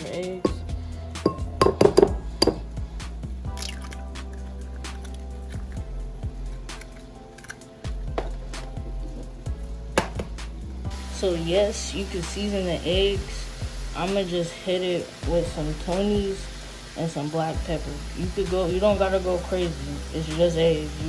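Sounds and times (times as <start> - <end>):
background music with bass: 0.0 - 21.0
eggs cracking on ceramic bowl: 3.6 - 5.8.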